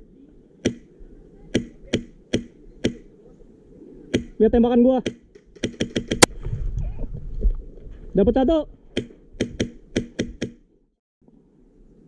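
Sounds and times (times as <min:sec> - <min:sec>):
airsoft gun shots: 0:05.0 - 0:06.3.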